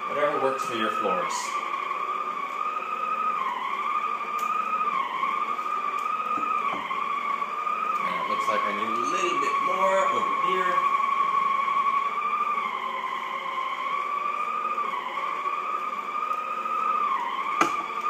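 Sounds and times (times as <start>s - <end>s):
floor cleaner motor whine: 0.0s - 18.0s.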